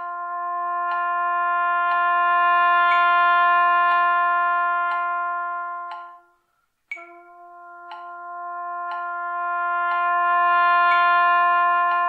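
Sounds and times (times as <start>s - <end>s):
metronome clicking: 0.0s - 12.0s
trumpet long tone: 0.0s - 12.0s.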